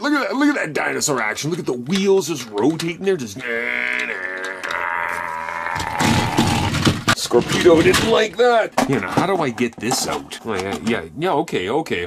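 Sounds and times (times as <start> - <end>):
toy truck rolling on concrete: 3.5 - 6.0
toy trucks knocking together: 5.7 - 11.0.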